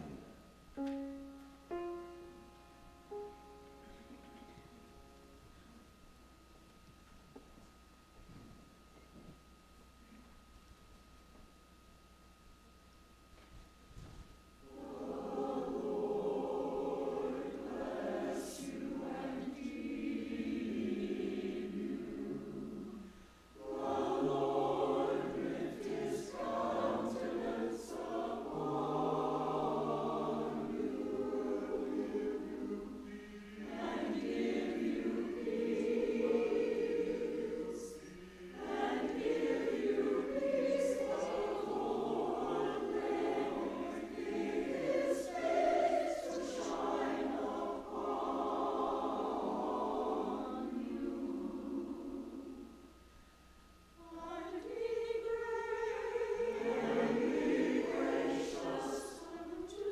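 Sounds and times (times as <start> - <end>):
church choir singing: 0.0 - 6.0, 14.6 - 53.1, 54.0 - 59.9.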